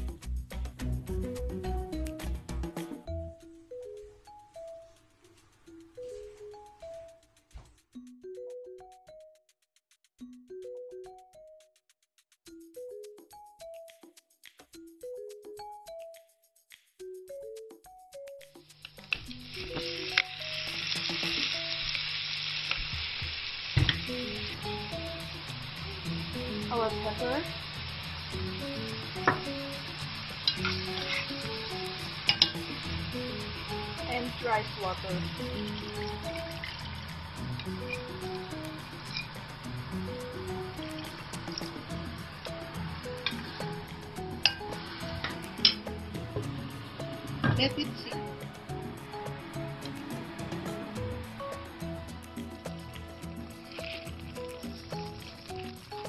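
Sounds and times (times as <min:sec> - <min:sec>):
background music simple melody: 0:00.0 - 0:22.6, 0:23.8 - 0:56.0
food sizzling in oil in a pan: 0:18.8 - 0:56.0
utensil knocking against pan: 0:29.2 - 0:29.6
water pouring into a pan: 0:33.9 - 0:38.4, 0:53.6 - 0:56.0.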